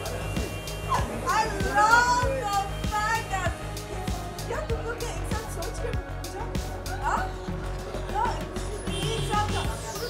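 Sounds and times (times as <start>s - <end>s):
background music with beat: 0.0s - 10.0s.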